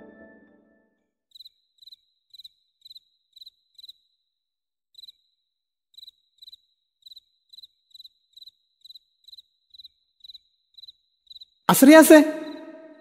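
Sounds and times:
cricket chirping: 0:01.3 - 0:04.3, 0:04.9 - 0:13.0
loud echoing voice: 0:11.7 - 0:13.0.

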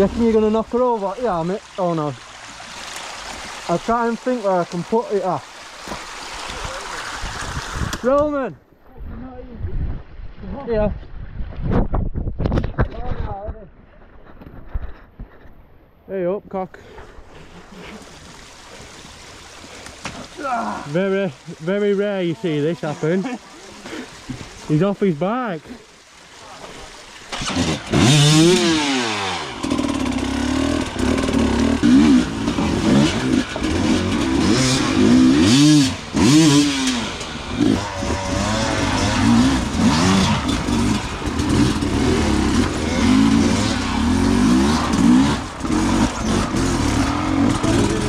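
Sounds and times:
rustling and small bumps: 0:10.9 - 0:15.8
motorcycle engine revving: 0:27.3 - 0:48.0.

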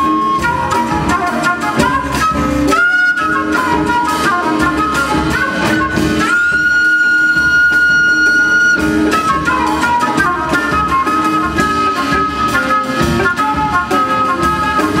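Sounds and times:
big band accompaniment: 0:00.0 - 0:15.0
flute jazz solo: 0:00.0 - 0:15.0.

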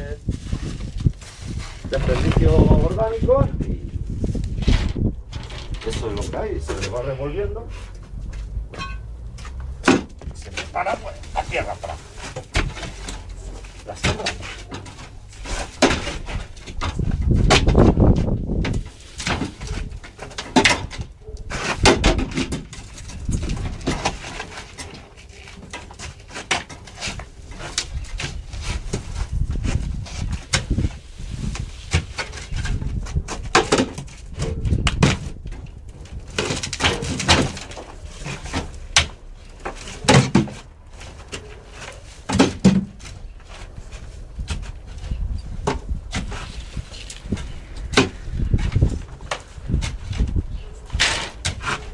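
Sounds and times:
hoe scraping and thudding in soil: 0:00.3 - 0:02.9, 0:04.0 - 0:20.9, 0:36.0 - 0:51.9.

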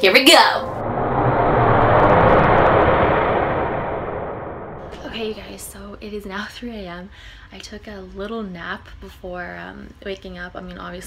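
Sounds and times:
rushing rumble transition effect: 0:00.6 - 0:05.8.

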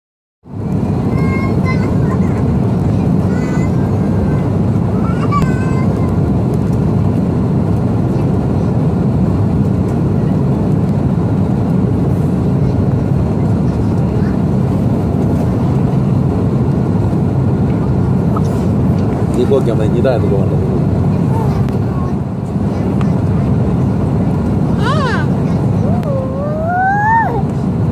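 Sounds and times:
jet airliner cabin noise: 0:00.5 - 0:27.9
faint voices: 0:17.7 - 0:27.5.

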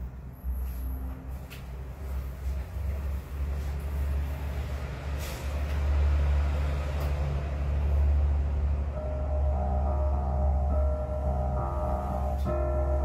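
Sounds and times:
low rumble: 0:08.2 - 0:13.0
digital piano playing soft notes: 0:08.9 - 0:13.0.

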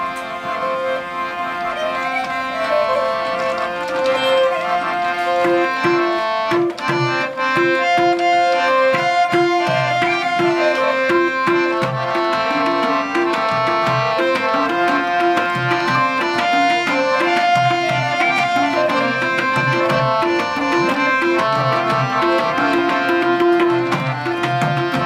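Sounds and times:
harmonium playing chords: 0:00.0 - 0:25.0
hand drums in steady rhythm: 0:04.2 - 0:25.0.

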